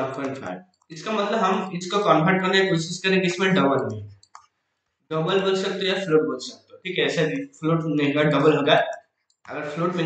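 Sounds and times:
man talking: 0.0s - 4.1s, 5.1s - 10.0s.

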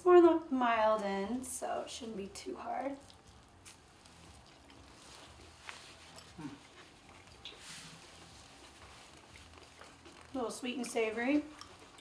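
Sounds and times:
people chewing food: 2.4s - 12.0s
closed-mouth mm: 6.2s - 6.8s.

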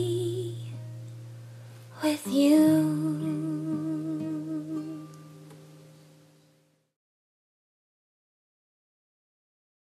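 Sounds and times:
woman singing with vibrato: 0.0s - 0.8s, 2.0s - 5.2s.

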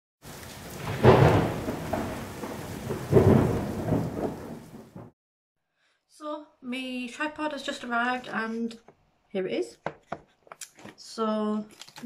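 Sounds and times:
rain: 0.2s - 5.1s
thunder rumbling: 0.2s - 5.2s.

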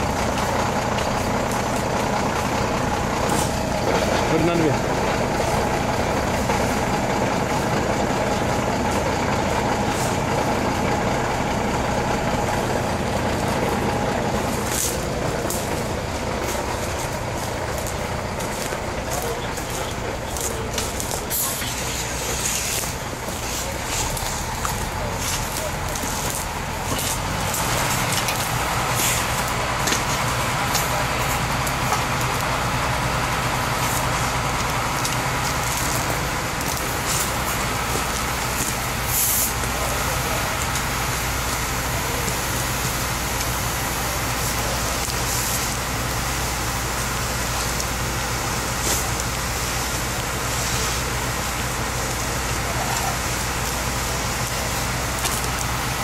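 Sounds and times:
fire engine running: 0.0s - 56.0s
water spraying from hose nozzle: 12.3s - 56.0s.

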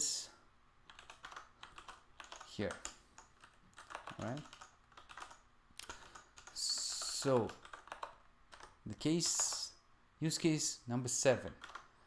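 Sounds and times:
keyboard typing: 0.8s - 9.7s, 11.4s - 11.9s.

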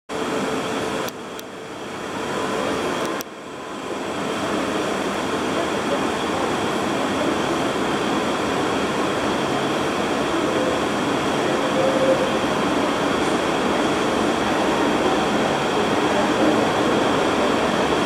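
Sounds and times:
diesel locomotive engine: 0.1s - 18.0s
rail noise: 0.1s - 18.0s.

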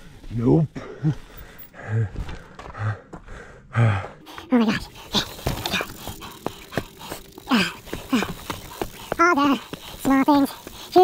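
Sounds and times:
rider's vocal noises: 3.8s - 11.0s
bike knocking and rattling over rocks: 4.8s - 11.0s.

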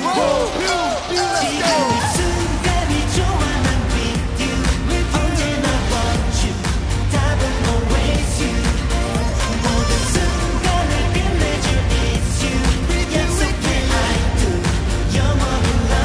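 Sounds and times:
singing over electronic beat: 0.0s - 16.0s.

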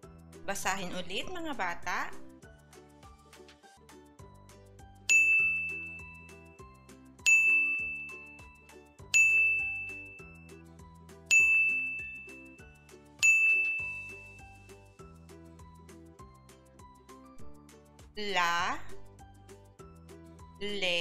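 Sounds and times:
soft background music: 0.0s - 21.0s
bright chime dinging: 5.1s - 6.4s, 7.3s - 8.4s, 9.2s - 10.2s, 11.3s - 12.6s, 13.2s - 14.4s.

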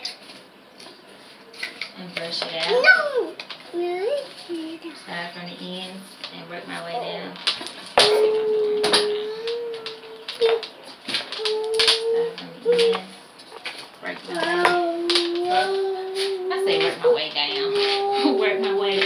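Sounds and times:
woman humming: 8.0s - 10.6s, 11.4s - 13.2s, 14.3s - 19.0s.

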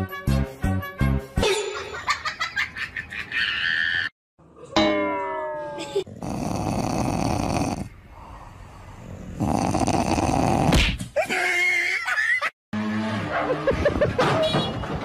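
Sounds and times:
dog making raspy growling noises: 6.1s - 10.8s.

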